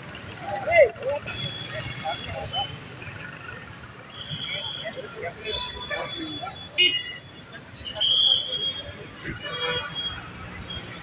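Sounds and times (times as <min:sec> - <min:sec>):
traffic noise: 0:00.0 - 0:11.0
voices: 0:00.0 - 0:11.0.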